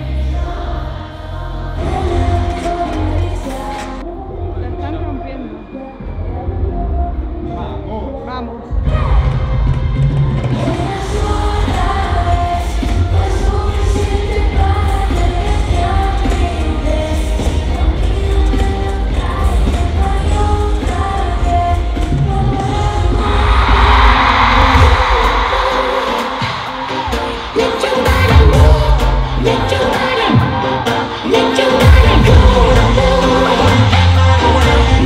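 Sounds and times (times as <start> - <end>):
woman singing pop song: 0.0 - 35.0
crowd cheering: 23.1 - 28.6
bass-heavy beat: 28.0 - 30.4, 31.6 - 35.0.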